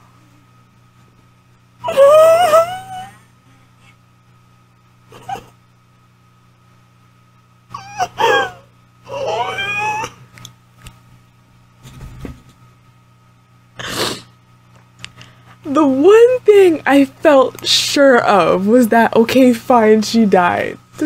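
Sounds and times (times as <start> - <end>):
low electrical hum: 0.0 - 21.0
woman whimpering squeals: 1.8 - 3.2, 7.7 - 10.2.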